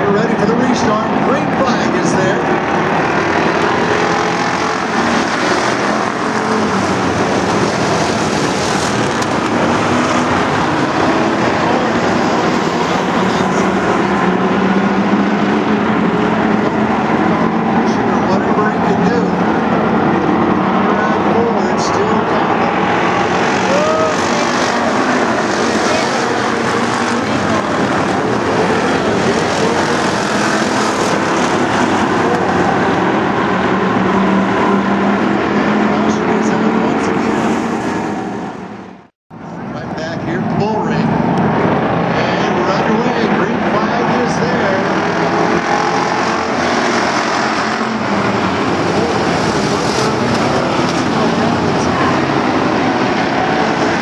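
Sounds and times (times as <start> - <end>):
stock car engines droning: 0.0 - 54.0.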